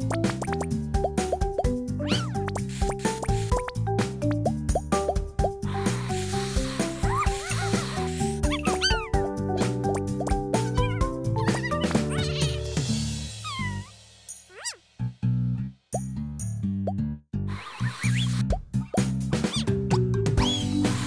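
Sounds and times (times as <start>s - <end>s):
playful cartoon music: 0.0s - 21.0s
whistle-like slides: 17.7s - 18.4s.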